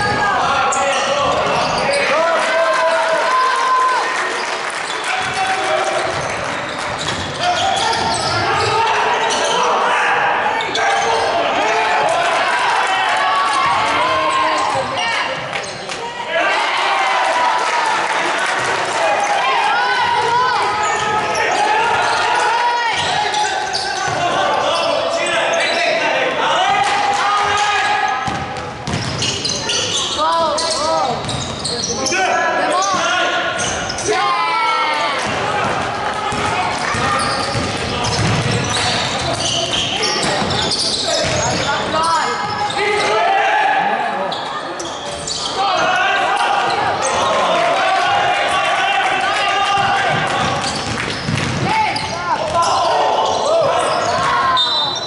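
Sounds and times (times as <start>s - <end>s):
sneakers squeaking: 0.0s - 2.2s, 4.4s - 12.0s, 13.5s - 16.2s, 19.1s - 26.1s, 27.4s - 34.2s, 35.0s - 43.4s, 44.2s - 47.8s, 49.8s - 55.0s
players calling out: 0.0s - 55.0s
basketball bouncing on hardwood: 50.1s - 51.7s.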